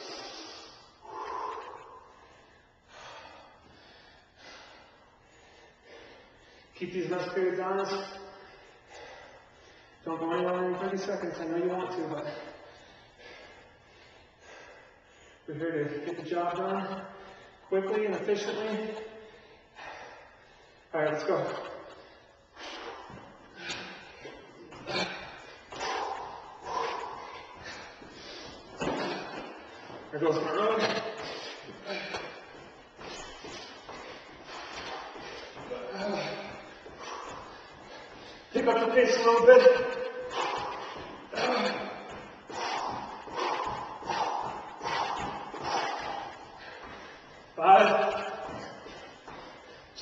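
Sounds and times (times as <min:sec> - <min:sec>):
hard breathing: 0:00.0 - 0:50.0.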